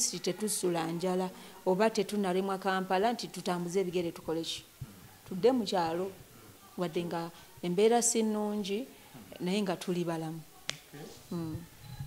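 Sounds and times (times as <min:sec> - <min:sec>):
woman speaking into microphone: 0:00.0 - 0:04.7, 0:05.3 - 0:06.2, 0:06.8 - 0:10.5, 0:11.3 - 0:11.7.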